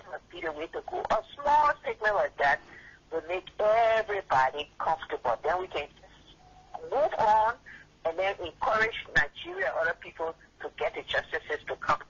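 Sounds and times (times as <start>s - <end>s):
voices over a telephone line: 0.0s - 12.0s.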